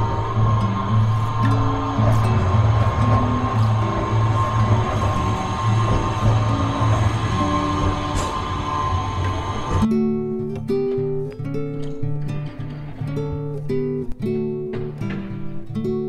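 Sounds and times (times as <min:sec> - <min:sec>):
steady high tone: 0:00.0 - 0:10.0
tram passing on street rails: 0:00.0 - 0:11.9
acoustic guitar music: 0:00.0 - 0:16.0.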